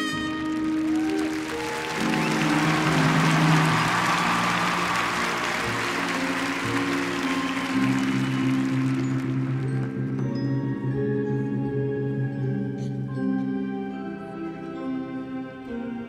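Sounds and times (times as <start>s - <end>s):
brass band sustained chords: 0.0s - 10.1s
crowd applauding and cheering: 0.0s - 10.7s.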